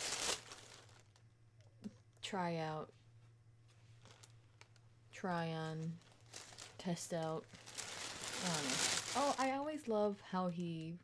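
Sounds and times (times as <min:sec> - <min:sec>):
packaging rustling: 0:00.0 - 0:01.2, 0:04.0 - 0:04.8, 0:05.9 - 0:09.8
faint crinkles and ticks: 0:03.7 - 0:04.9, 0:05.7 - 0:11.0.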